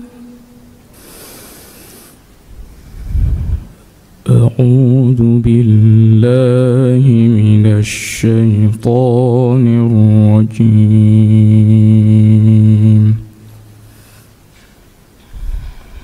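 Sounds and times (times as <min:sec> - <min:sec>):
man reciting melodically: 0:04.2 - 0:13.4.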